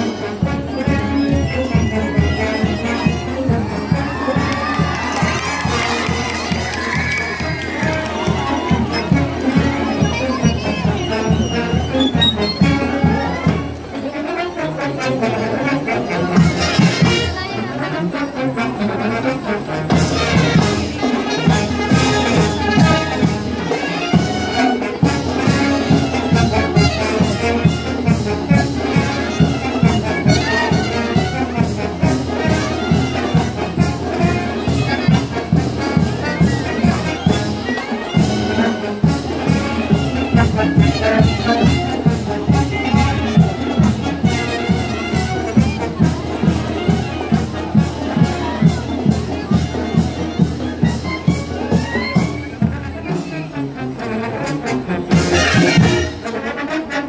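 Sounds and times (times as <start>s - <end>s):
brass melody: 0.0s - 57.0s
drums keeping march beat: 0.0s - 57.0s.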